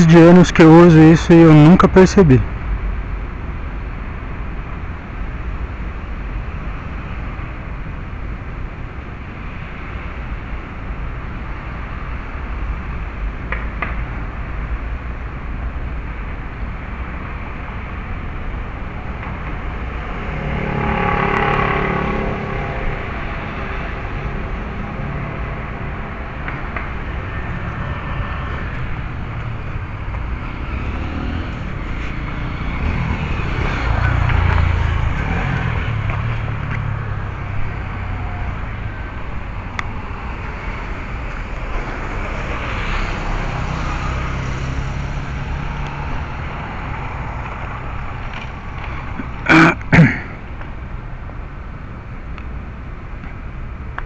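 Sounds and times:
vehicle passing: 0.0 - 2.6, 17.3 - 50.9
city traffic rumble: 0.0 - 54.0.

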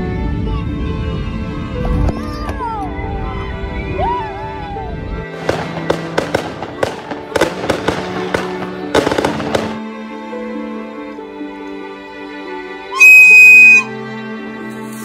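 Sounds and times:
jet airliner rumble: 0.0 - 6.8
background music: 0.0 - 15.0
firework bangs and crackles: 5.3 - 9.8.

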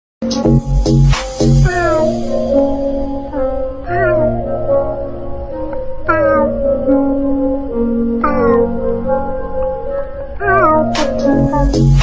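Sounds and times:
backing music track: 0.2 - 12.0
meowing vocals singing: 1.7 - 2.2, 3.9 - 4.4, 6.1 - 6.6, 8.2 - 9.0, 10.3 - 12.0.

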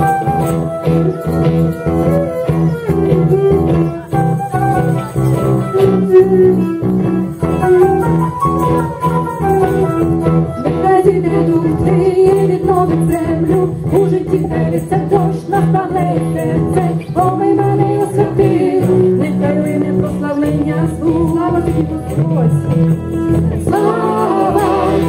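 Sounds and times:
guitars playing rhythm: 0.0 - 25.0
person singing: 5.7 - 8.0, 10.5 - 25.0.

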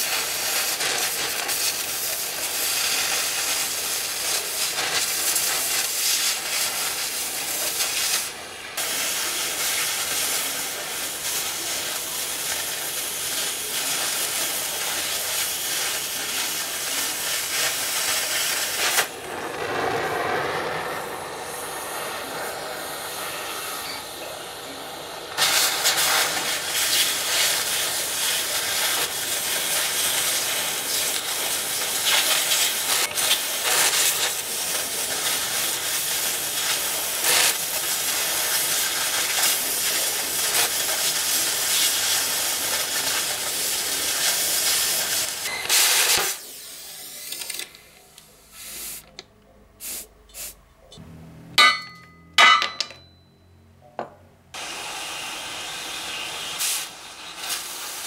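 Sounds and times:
cutting torch hissing: 0.0 - 49.1, 54.6 - 58.0.

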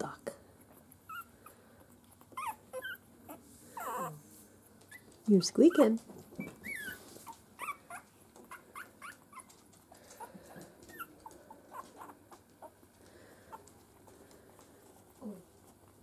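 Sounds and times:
puppies squeaking: 0.6 - 12.9.

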